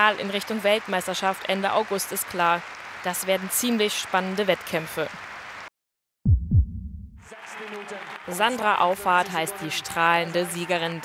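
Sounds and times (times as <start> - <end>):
low rumble: 6.3 - 7.3.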